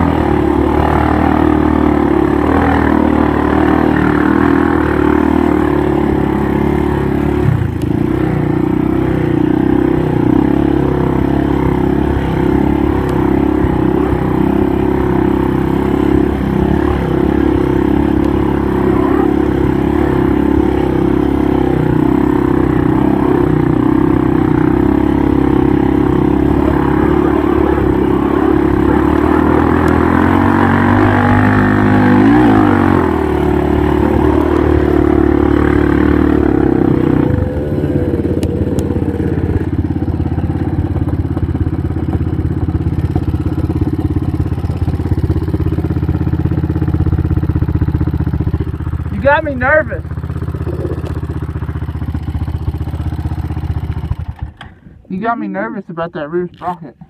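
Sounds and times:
atv engine running: 0.0 - 57.0.

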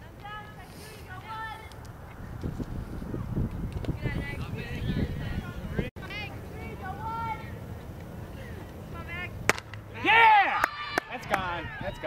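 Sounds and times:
bat cracking against ball: 9.5 - 9.8.

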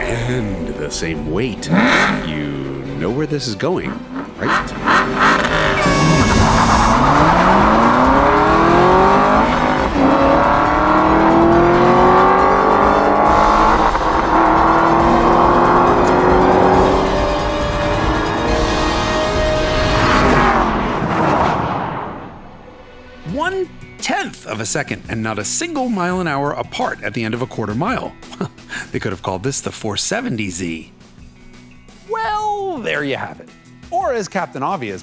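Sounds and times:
sports car engines accelerating: 1.5 - 3.0, 3.8 - 22.5.

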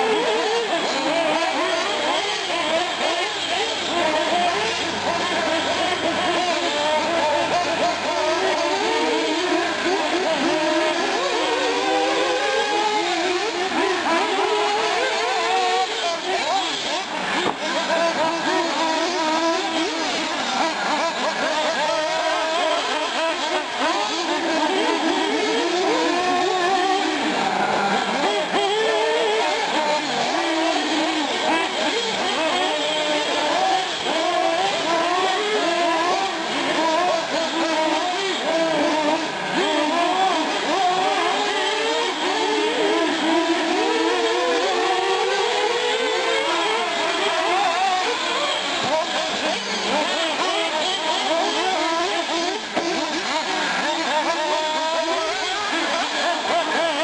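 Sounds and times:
small engines of model cars racing: 0.0 - 57.0.

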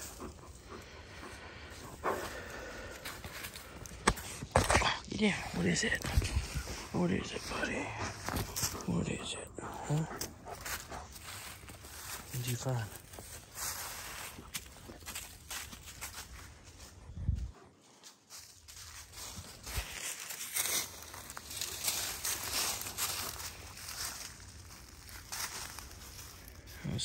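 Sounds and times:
tarp and leaves rustling: 10.5 - 16.9, 18.0 - 27.0.

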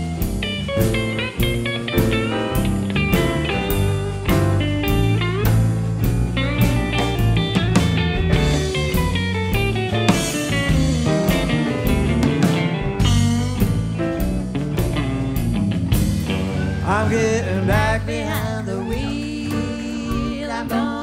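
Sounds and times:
bass line: 0.0 - 21.0
blues electric guitar solo: 0.0 - 21.0
drum kit: 0.0 - 21.0.

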